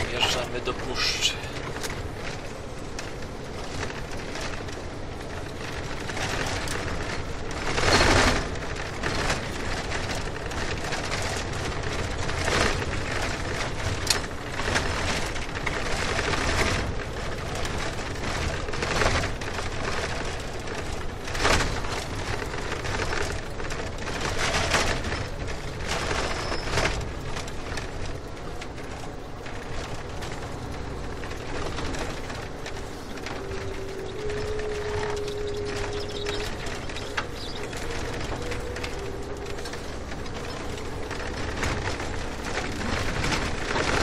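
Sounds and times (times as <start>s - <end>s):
car road noise: 0.0s - 44.0s.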